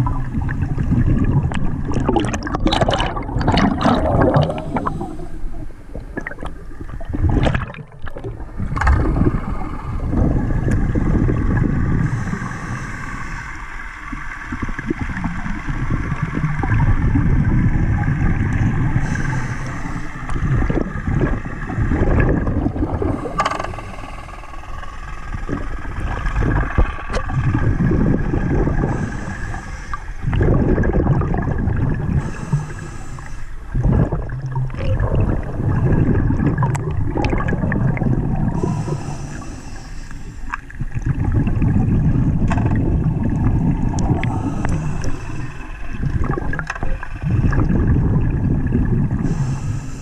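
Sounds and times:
underwater rush of water: 0:00.0 - 0:50.0
faint steady whine: 0:08.0 - 0:50.0.

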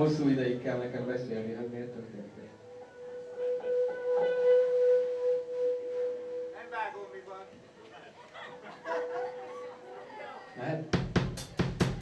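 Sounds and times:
sustained electric guitar tone: 0:01.3 - 0:07.7.

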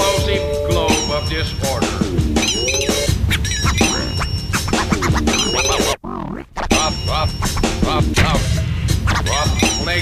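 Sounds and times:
hip-hop beat with heavy bass: 0:00.0 - 0:10.0
turntable scratching: 0:01.7 - 0:10.0.

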